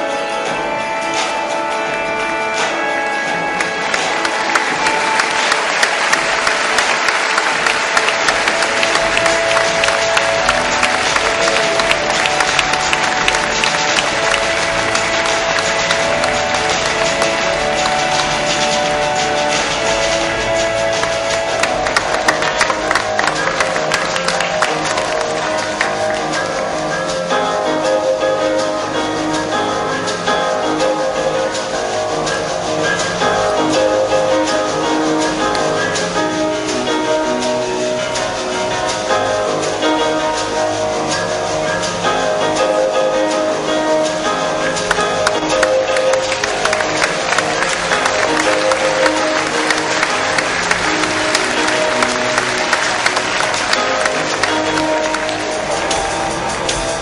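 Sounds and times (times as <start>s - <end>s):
background music: 0.0s - 57.0s
crowd applauding: 2.6s - 27.4s, 29.4s - 57.0s.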